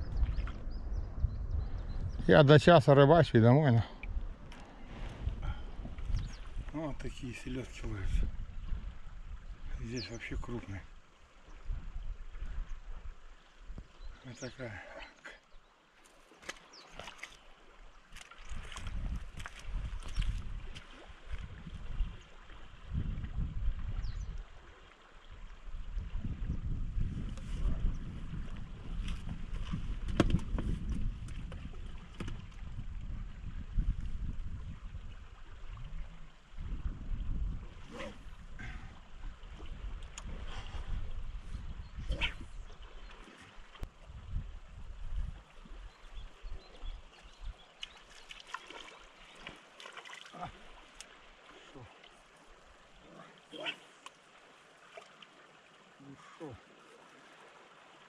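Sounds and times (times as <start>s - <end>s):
wind buffeting microphone: 0.0s - 2.6s, 3.2s - 10.8s, 11.5s - 14.2s, 18.4s - 24.6s, 25.6s - 47.7s.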